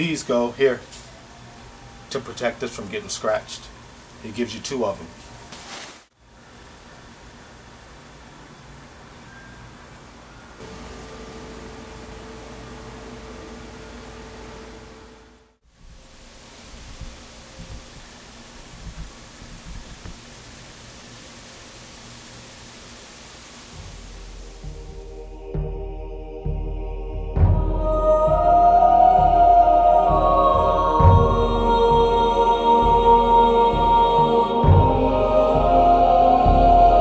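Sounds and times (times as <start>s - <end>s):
background hiss: 0.0s - 26.6s
faint steady hum: 6.2s - 37.0s.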